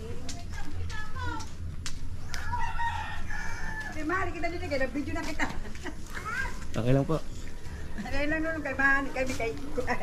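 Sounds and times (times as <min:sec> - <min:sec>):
rooster crowing: 0:02.2 - 0:04.4.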